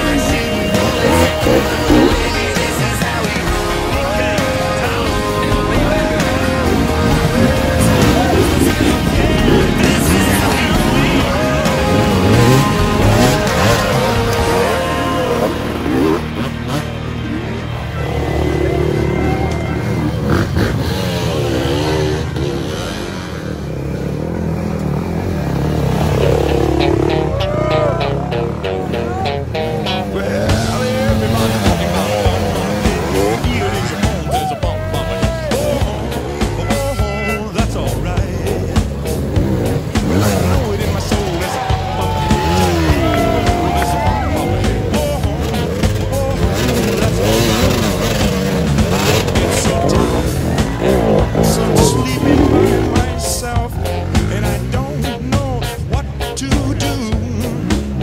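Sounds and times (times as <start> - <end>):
dirt bike engines revving: 0.0 - 58.0
music playing: 0.0 - 58.0.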